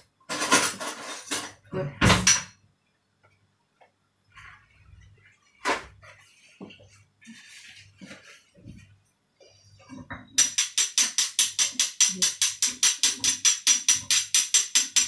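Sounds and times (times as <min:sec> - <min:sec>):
soft handling sounds: 0:03.2 - 0:10.1.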